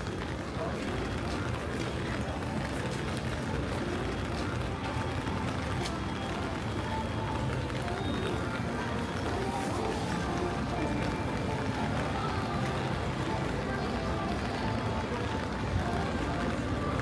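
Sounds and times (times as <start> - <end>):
indistinct chatter: 0.0 - 17.0
music from shops: 0.0 - 17.0
rain patter on an umbrella: 0.0 - 17.0.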